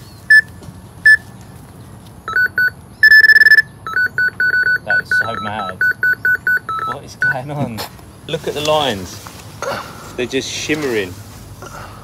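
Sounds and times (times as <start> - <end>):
electronic bite alarm beeps: 2.3 - 7.4.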